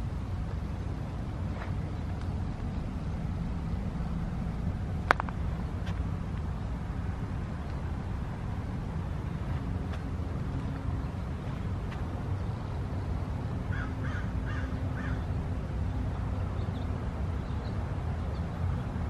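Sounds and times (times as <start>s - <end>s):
low outdoor rumble: 0.0s - 19.0s
bird calling: 13.7s - 15.3s.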